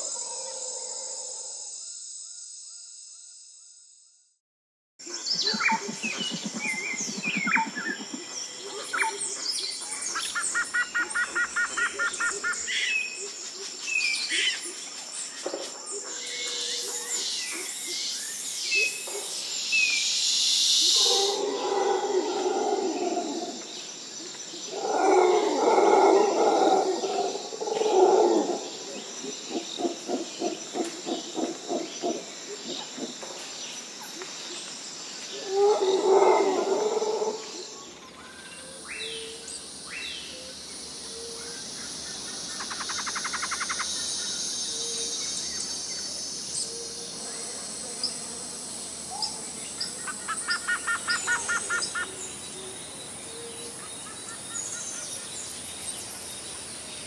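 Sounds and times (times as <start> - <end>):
birds chirping and calling: 5.1 - 20.0, 37.9 - 48.2, 49.0 - 56.5.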